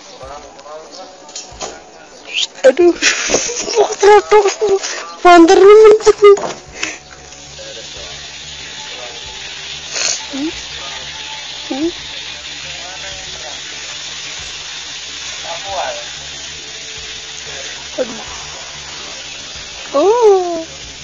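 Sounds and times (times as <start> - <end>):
steady hiss: 0.0 - 21.0.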